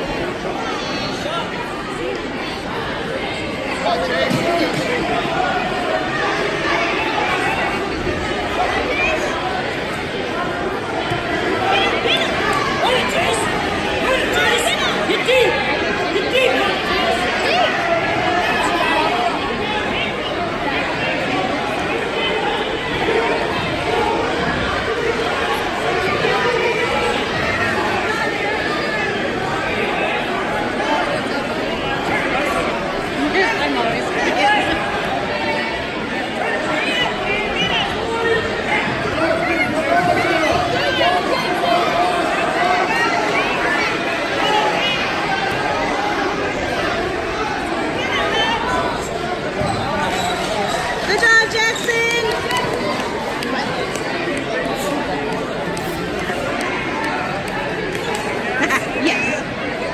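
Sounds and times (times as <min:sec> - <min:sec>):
crowd chatter: 0:00.0 - 0:59.9.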